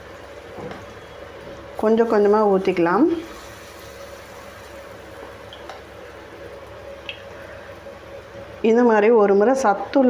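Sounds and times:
batter sizzling in oil: 0:00.0 - 0:08.6.

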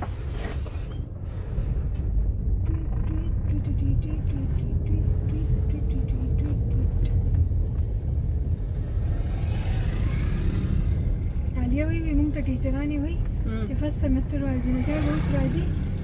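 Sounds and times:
car driving on rough road: 0:00.0 - 0:16.0.

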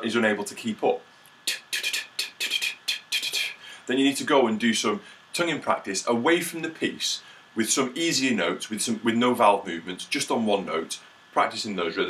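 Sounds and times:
mouth tonguing rhythm: 0:01.2 - 0:03.7.

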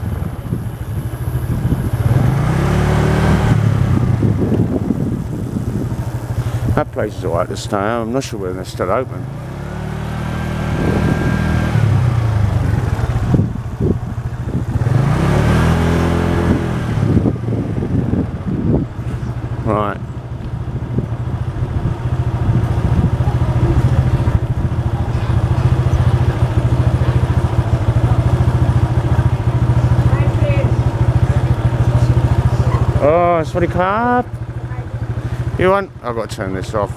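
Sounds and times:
motorbike engine running: 0:00.0 - 0:36.9.

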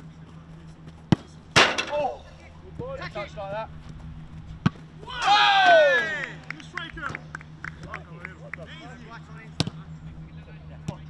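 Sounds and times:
football being kicked: 0:04.6 - 0:04.9, 0:09.6 - 0:09.8
players calling out: 0:05.0 - 0:10.8.

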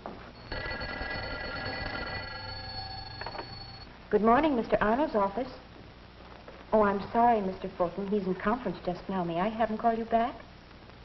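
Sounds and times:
telephone bell ringing: 0:00.4 - 0:03.9.

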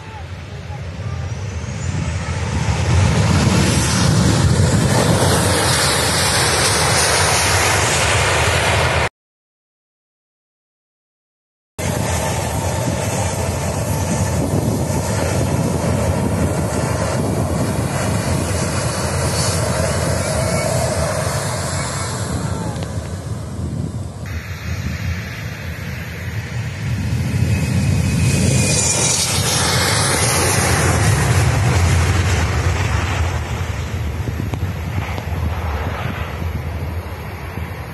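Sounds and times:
jet engines running: 0:00.0 - 0:09.1, 0:11.8 - 0:37.9
rising engine whine: 0:00.0 - 0:09.1, 0:11.8 - 0:37.9.

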